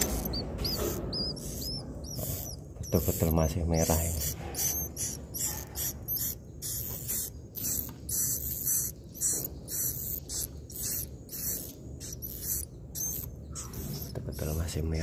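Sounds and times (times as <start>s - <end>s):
swiftlets chirping: 0.0s - 15.0s.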